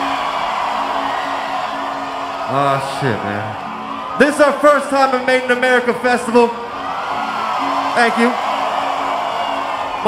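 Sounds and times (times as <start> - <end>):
crowd cheering and whooping: 0.0 - 10.0.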